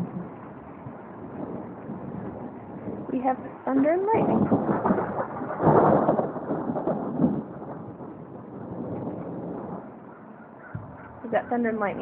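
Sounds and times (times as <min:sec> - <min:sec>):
thunder rumbling: 0:00.0 - 0:12.0.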